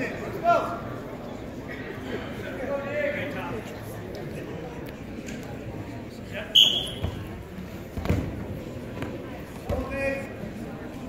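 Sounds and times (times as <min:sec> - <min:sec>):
crowd murmuring: 0:00.0 - 0:11.0.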